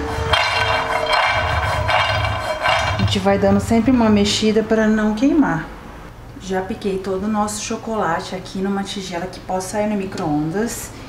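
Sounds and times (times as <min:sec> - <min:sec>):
background music: 0:00.0 - 0:03.5
nuts rattling in a frying pan: 0:00.2 - 0:03.2.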